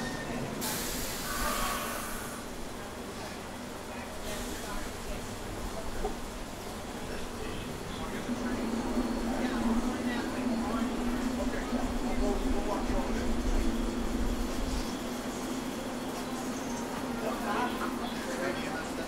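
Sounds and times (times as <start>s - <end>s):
passengers chattering: 0.0s - 19.0s
subway train humming: 0.0s - 19.0s.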